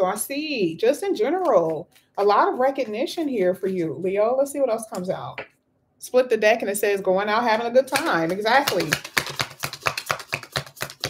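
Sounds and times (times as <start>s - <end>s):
cards being shuffled: 8.6s - 11.0s.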